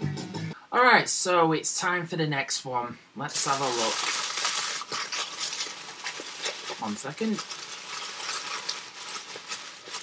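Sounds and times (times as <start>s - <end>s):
hands rummaging in a box: 3.4s - 10.0s.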